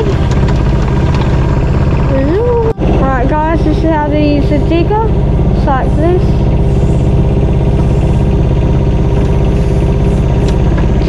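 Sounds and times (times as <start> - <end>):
diesel engine running steadily: 0.0 - 11.0.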